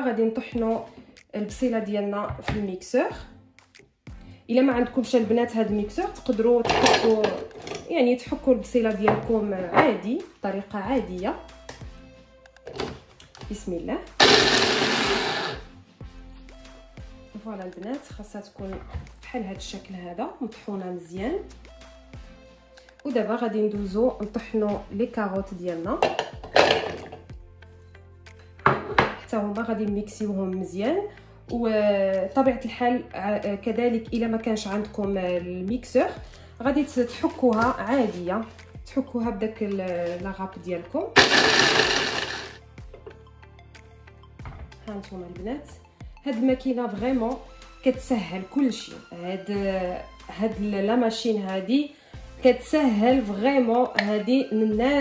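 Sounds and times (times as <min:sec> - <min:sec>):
soft background music: 0:00.0 - 0:55.0
blender chopping onion: 0:14.2 - 0:15.7, 0:41.2 - 0:42.6.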